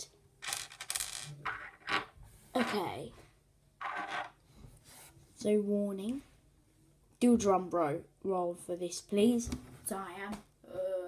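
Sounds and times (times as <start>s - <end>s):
small rocks clinking on a table: 0.4s - 2.8s.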